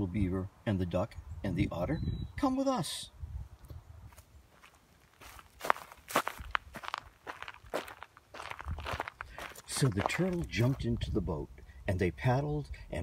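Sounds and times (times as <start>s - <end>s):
footsteps on dry leaves and twigs: 4.0s - 11.0s.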